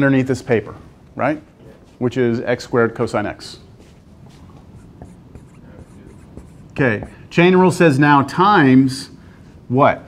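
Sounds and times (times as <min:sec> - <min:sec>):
pen scratching on board: 0:04.7 - 0:07.2
pen tapping on board: 0:04.9 - 0:07.2.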